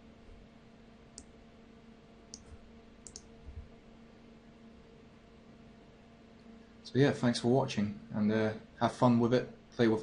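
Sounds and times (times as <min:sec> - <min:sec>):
low electrical hum: 0:00.0 - 0:10.0
computer mouse clicks: 0:02.3 - 0:03.3.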